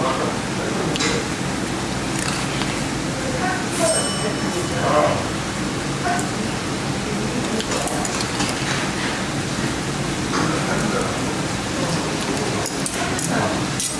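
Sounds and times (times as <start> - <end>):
stew boiling and bubbling: 0.0 - 13.9.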